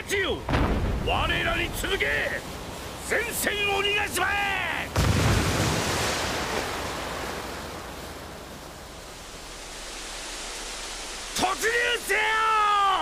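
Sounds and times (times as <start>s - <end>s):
rushing wind-like noise: 0.4s - 13.0s.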